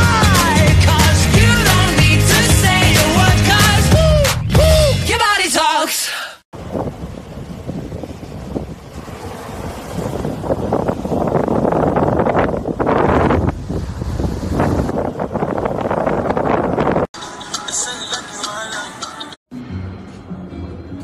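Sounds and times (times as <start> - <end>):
wind buffeting microphone: 6.6 - 17.2
ocean surf breaking: 6.6 - 19.0.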